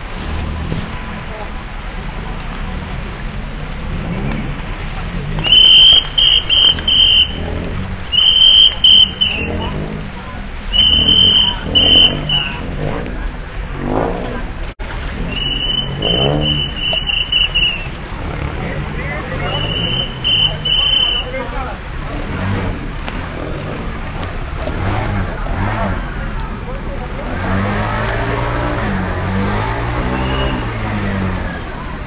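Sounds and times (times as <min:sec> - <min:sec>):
low rumble of traffic: 0:00.0 - 0:32.0
voices: 0:00.0 - 0:32.0
traffic whistle blasts: 0:05.4 - 0:09.9, 0:10.6 - 0:12.7, 0:15.2 - 0:18.0, 0:19.4 - 0:21.6, 0:30.0 - 0:30.8.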